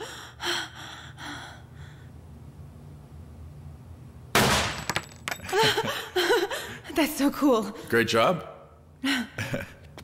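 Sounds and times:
pistol shot: 4.4s - 4.8s.

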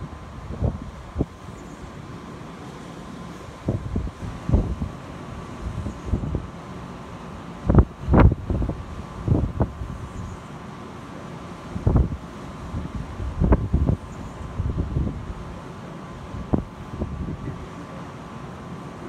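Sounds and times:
wind buffeting microphone: 0.0s - 2.1s, 3.4s - 6.6s, 7.6s - 10.4s, 11.7s - 15.5s, 16.2s - 17.7s
steady background hiss: 0.0s - 19.0s.

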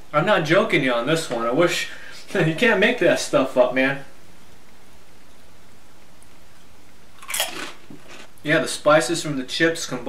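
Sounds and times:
faint room hiss: 0.0s - 10.0s
potato chip crunching: 7.2s - 8.4s.

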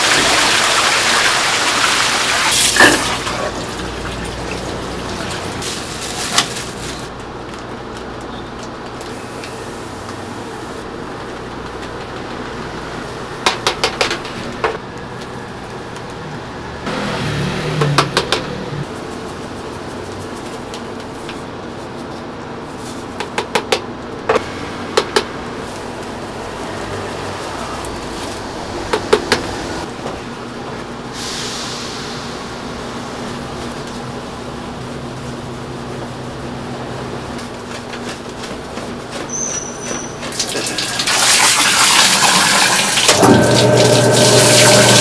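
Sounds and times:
water running from a hose: 0.0s - 7.0s, 39.8s - 45.0s
liquid pouring into a pot: 40.3s - 45.0s.

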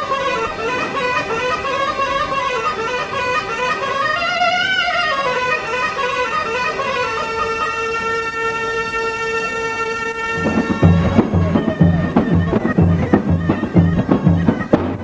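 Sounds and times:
reed pipe melody: 0.0s - 15.0s.

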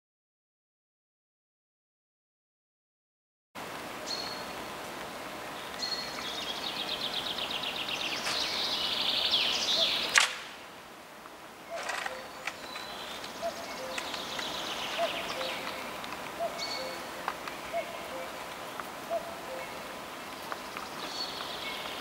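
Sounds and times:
steady background hiss: 3.6s - 22.0s
songbirds trilling and chirping: 4.0s - 22.0s
sharp click: 10.1s - 10.5s.

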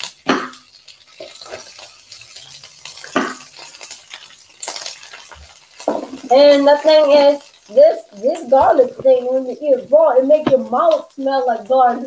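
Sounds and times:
vegetables sizzling in a skillet: 0.0s - 12.0s.

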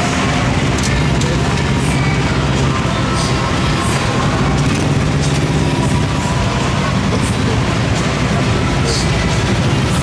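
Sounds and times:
truck engines idling: 0.0s - 10.0s.

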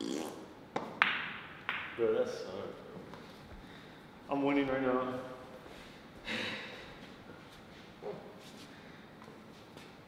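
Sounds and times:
cue striking ball: 0.8s - 2.0s.

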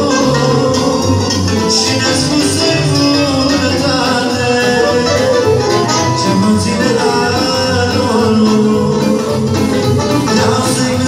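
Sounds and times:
accordion: 0.0s - 11.0s
electric guitar: 0.0s - 11.0s
keyboards: 0.0s - 11.0s
man singing into a microphone: 0.0s - 11.0s.

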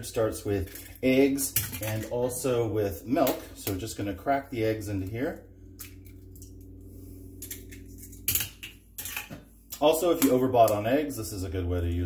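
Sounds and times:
faint steady hum: 0.0s - 12.0s
eggs cracking on bowl rim: 5.8s - 6.6s, 7.4s - 10.8s.

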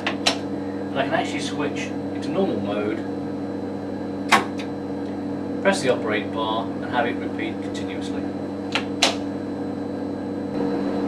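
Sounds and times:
computer humming: 0.0s - 11.0s.

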